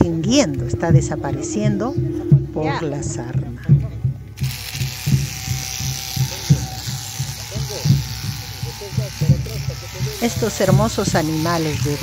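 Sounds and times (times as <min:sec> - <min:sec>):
background music with low beat: 0:00.0 - 0:12.0
small electric motor buzzing: 0:04.4 - 0:12.0.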